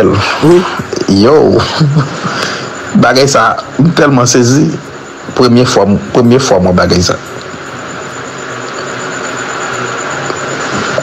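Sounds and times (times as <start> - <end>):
faint low hum: 0.0 - 11.0
outdoor hiss: 0.0 - 11.0.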